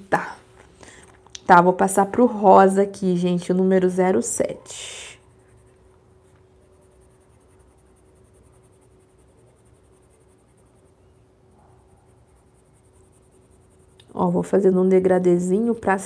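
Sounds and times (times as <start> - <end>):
faint steady hum: 0.0 - 16.0
pencil scratching on paper: 5.2 - 14.7.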